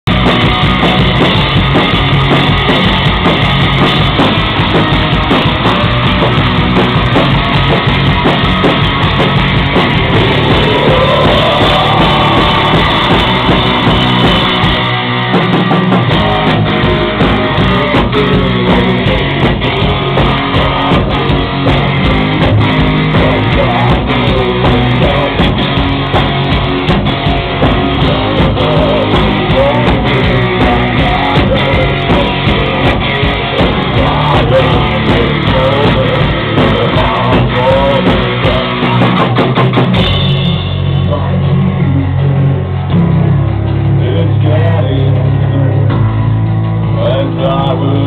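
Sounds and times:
drum kit beat: 0.0s - 43.4s
distorted electric guitars: 0.0s - 48.0s
rock band playing live: 0.0s - 48.0s.

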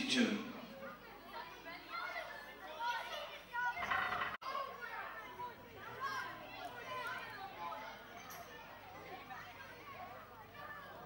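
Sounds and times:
distant voices chattering: 0.6s - 11.0s.

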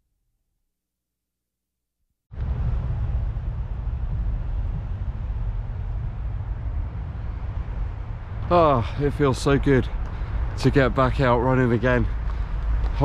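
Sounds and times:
wind buffeting microphone: 2.3s - 13.0s.

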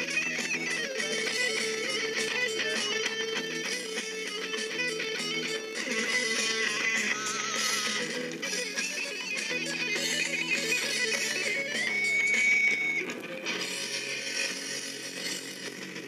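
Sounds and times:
strummed electric guitar chords: 0.0s - 16.0s.

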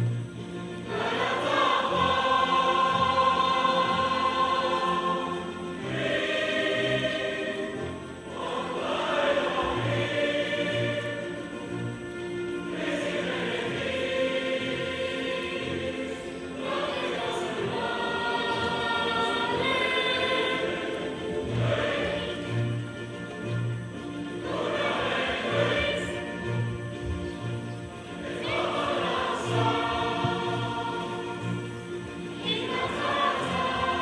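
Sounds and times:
girls choir singing: 0.0s - 34.0s.

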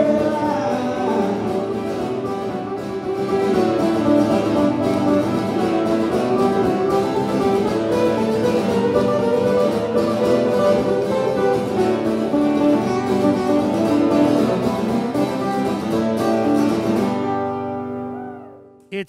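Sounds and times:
acoustic guitar strumming: 0.0s - 18.7s.

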